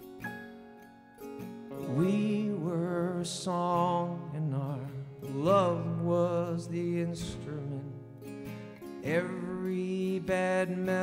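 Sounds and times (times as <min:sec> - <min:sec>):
acoustic guitar: 0:00.0 - 0:11.0
man singing: 0:01.7 - 0:08.2, 0:09.0 - 0:11.0.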